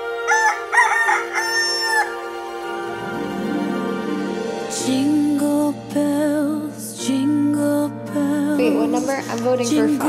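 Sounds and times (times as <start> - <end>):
rooster crowing: 0.0 - 2.4
soft background music: 0.0 - 10.0.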